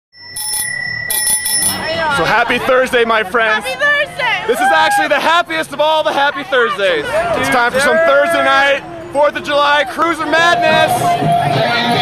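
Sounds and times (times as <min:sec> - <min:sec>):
bicycle bell ringing: 0:00.2 - 0:02.3.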